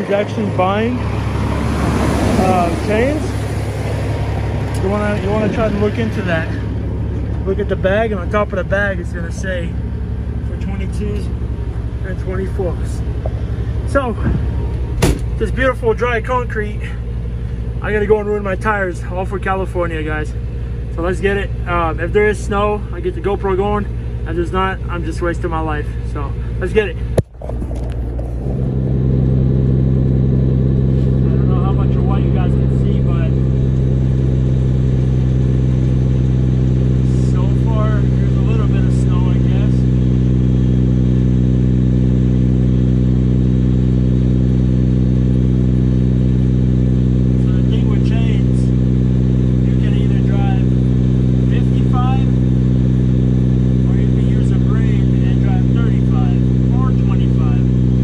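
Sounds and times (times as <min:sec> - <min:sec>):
truck diesel engine droning: 0:00.0 - 0:58.0.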